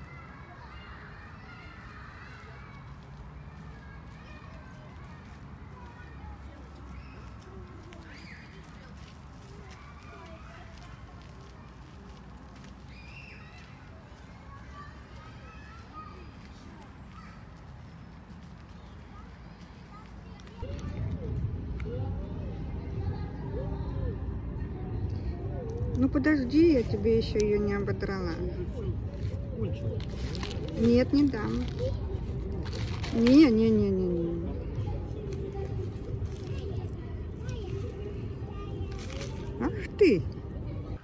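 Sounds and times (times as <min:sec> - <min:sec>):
distant road traffic rumble: 0:00.0 - 0:41.0
crow pecking plastic bag: 0:00.4 - 0:21.0, 0:28.9 - 0:34.2, 0:35.0 - 0:40.1.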